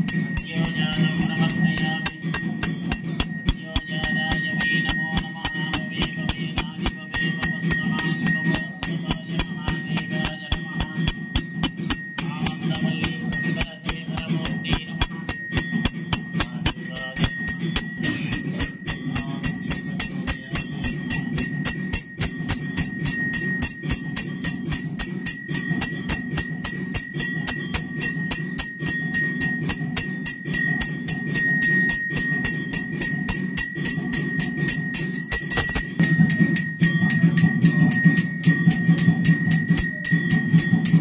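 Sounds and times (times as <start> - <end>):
bell rung in fast strokes: 0.0 - 41.0
music with low steady drone: 0.0 - 41.0.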